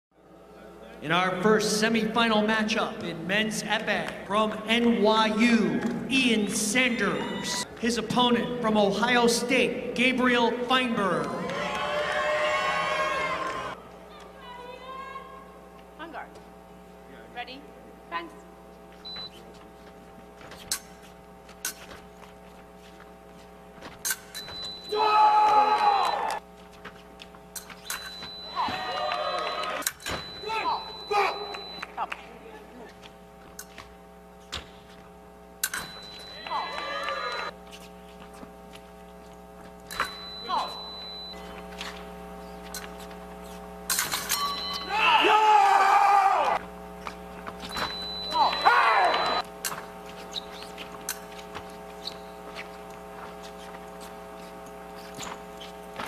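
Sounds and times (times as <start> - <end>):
steady hum: 0.2 - 56.0
loud shouts: 11.3 - 13.8, 24.9 - 26.4, 28.6 - 29.8, 36.4 - 37.5, 44.8 - 46.6, 48.4 - 49.4
scoring box high beep: 47.7 - 49.4.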